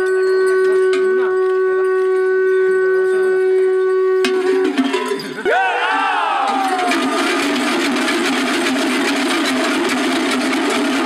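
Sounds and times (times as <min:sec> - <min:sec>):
horn long held note: 0:00.1 - 0:05.0.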